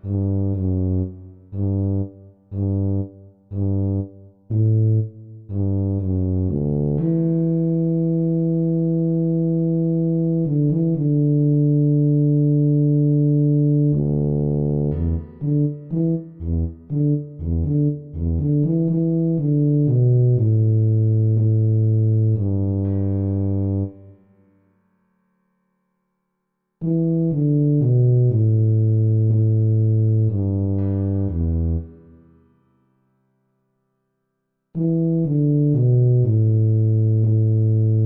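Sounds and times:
synthesized tuba melody: 0:00.0 - 0:24.2, 0:26.8 - 0:32.5, 0:34.8 - 0:38.0.

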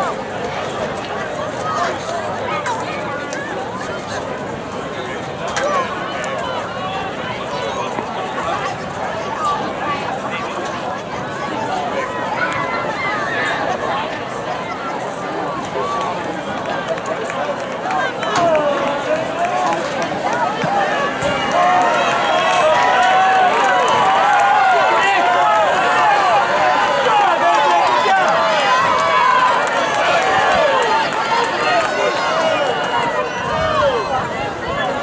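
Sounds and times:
spectators shouting and cheering: 0:00.0 - 0:35.0.

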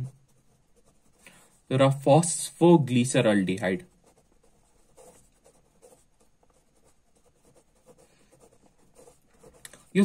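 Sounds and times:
marker pen scratching on paper: 0:00.0 - 0:10.0.

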